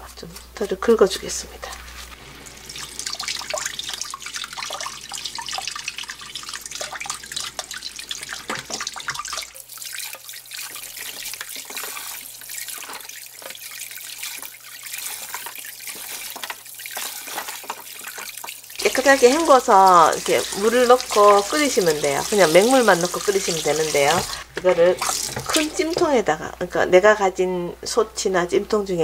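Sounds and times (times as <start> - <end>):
tap water splashing into bowl: 2.6 - 26.2.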